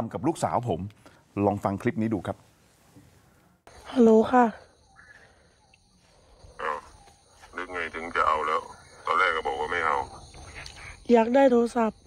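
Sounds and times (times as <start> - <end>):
faint phone line hiss: 6.0 - 11.2
person speaking over phone: 6.6 - 10.6.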